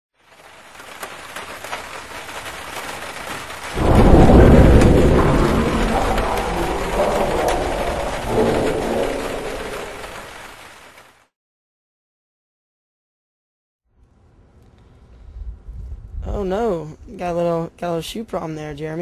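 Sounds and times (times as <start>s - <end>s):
rain falling: 0.2s - 11.3s
thunder rumbling: 0.4s - 11.1s.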